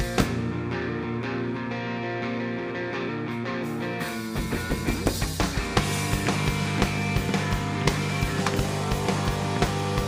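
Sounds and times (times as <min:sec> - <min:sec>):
drum kit beat: 0:00.0 - 0:00.7, 0:04.2 - 0:10.0
electric bass guitar: 0:00.0 - 0:10.0
electric guitar: 0:00.0 - 0:10.0.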